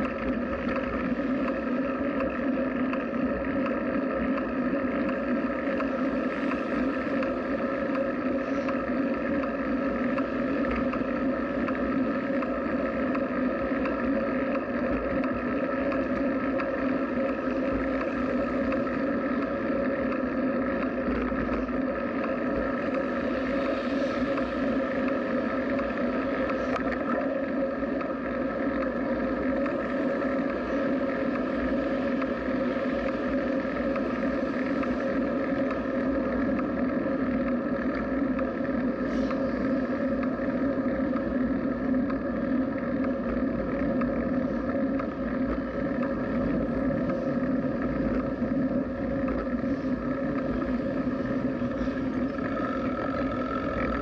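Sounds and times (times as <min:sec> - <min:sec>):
bicycle rolling noise: 0:00.0 - 0:54.0
droning hum: 0:00.0 - 0:54.0
wind: 0:00.0 - 0:54.0.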